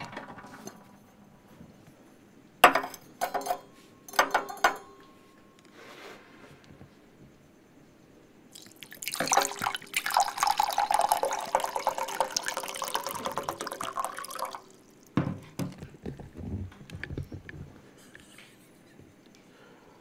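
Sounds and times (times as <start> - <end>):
liquid pouring into steel cup: 8.6 - 15.2.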